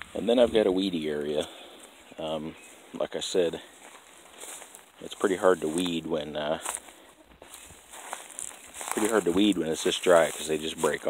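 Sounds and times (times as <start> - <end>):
footsteps on dry soil: 0.0 - 11.0.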